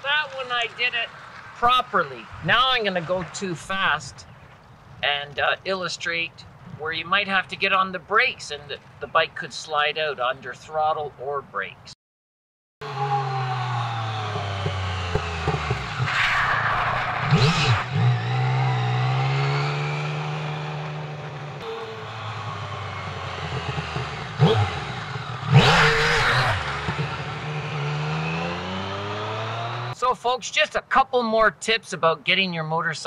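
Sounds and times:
motorcycle engine revving: 12.8s - 30.0s.

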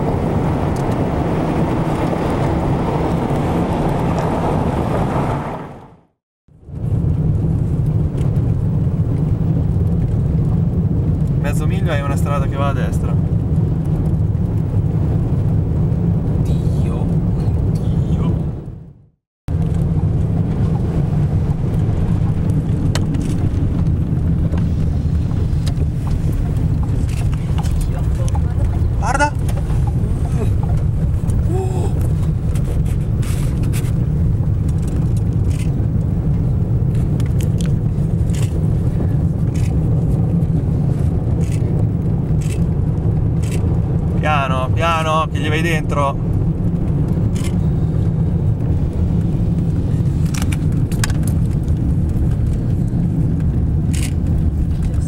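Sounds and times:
vehicle driving on dirt road: 0.0s - 55.0s
wind noise: 0.0s - 55.0s.

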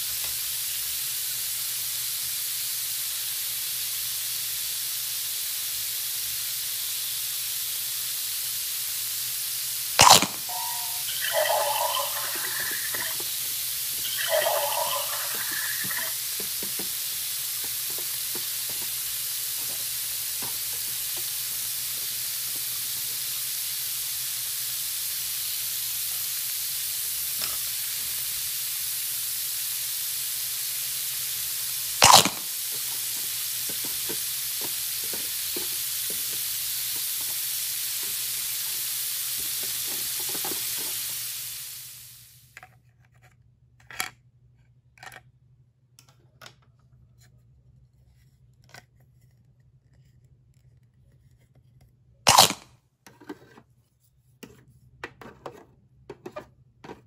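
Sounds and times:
short electronic sound bursts: 10.0s - 13.2s
electronic sizzling sound effect: 10.0s - 13.3s, 13.9s - 16.2s, 32.0s - 32.6s
plastic toy clicks: 32.0s - 32.4s.

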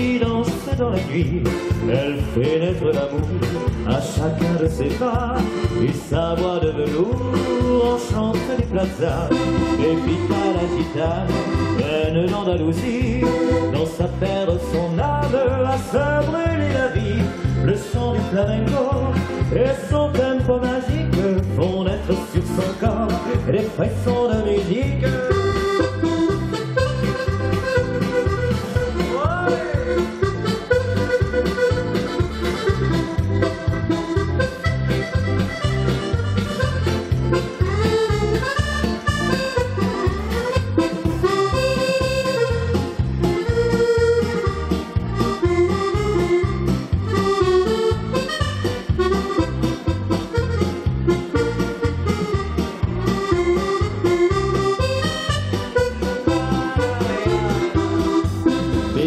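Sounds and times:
backing accompaniment with bass beat: 0.0s - 59.0s
button accordion melody: 0.0s - 59.0s.

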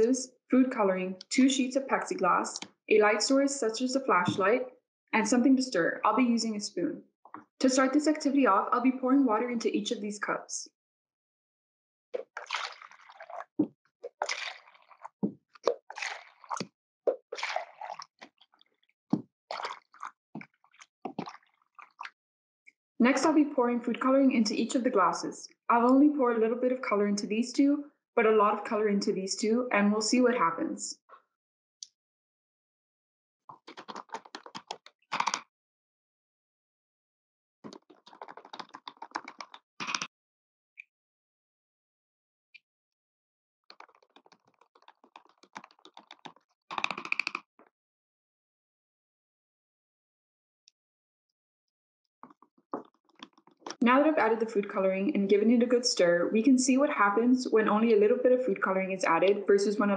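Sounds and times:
water pouring into plastic cups: 12.2s - 18.8s, 19.5s - 22.2s, 37.7s - 40.0s, 43.7s - 47.1s.

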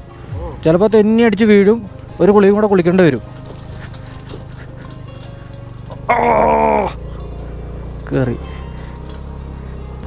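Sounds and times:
background music: 0.0s - 10.0s
scooter engine running: 1.4s - 10.0s.

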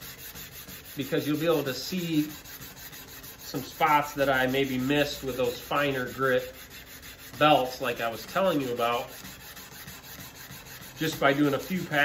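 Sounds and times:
sandpaper rasping on steel blade: 0.0s - 12.0s.

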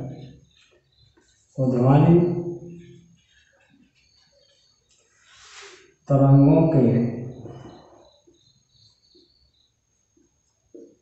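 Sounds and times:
marker squeaking on whiteboard: 0.0s - 6.0s.

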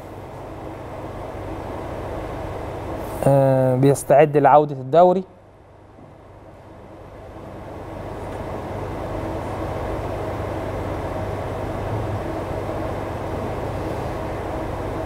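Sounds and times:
faint steady hum: 0.0s - 15.0s
outdoor rumbling noise: 5.4s - 15.0s.

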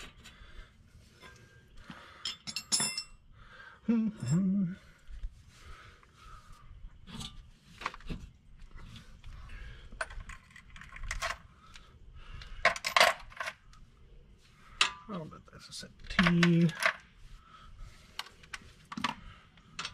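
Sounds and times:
metal tools clinking on concrete: 2.2s - 3.2s, 12.6s - 13.6s.

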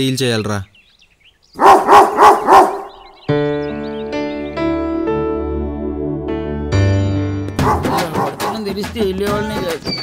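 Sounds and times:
dog barking: 1.6s - 3.0s, 7.6s - 8.7s.

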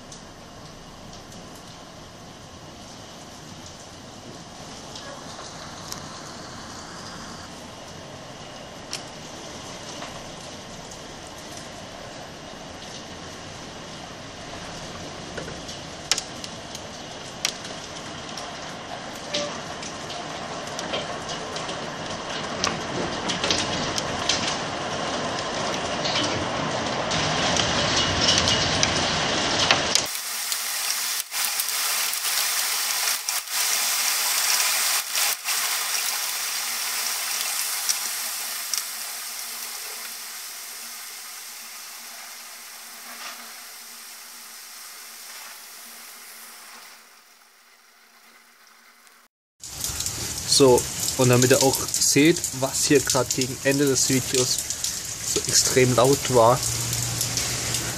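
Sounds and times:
hail and rain pelting: 0.0s - 47.6s, 49.6s - 57.9s.

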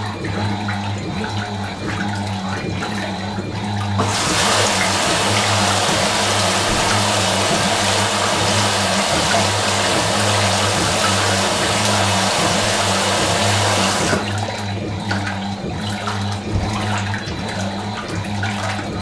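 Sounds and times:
load sloshing: 0.0s - 19.0s
washing machine motor hum: 0.0s - 19.0s
water pouring into washing machine: 0.0s - 19.0s.

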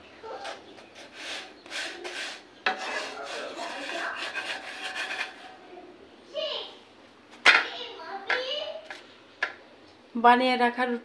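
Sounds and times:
spatula scraping metal pan: 0.4s - 5.6s
spatula swishing in metal pan: 1.0s - 5.5s.

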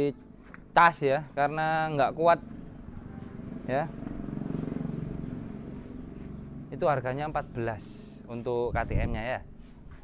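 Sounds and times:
motorcycle engine running: 1.4s - 10.0s.

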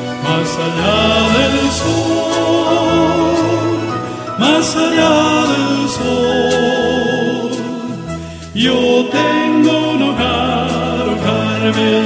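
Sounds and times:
choir holding sustained chord: 0.2s - 8.0s.

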